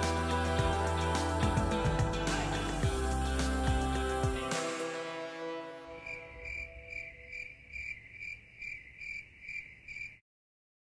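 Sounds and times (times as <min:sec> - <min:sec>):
cricket chirping: 0:05.9 - 0:10.2.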